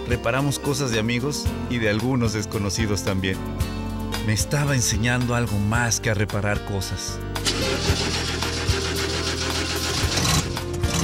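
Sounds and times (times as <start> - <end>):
background music: 0.0 - 11.0
truck engine starting and running: 7.4 - 11.0.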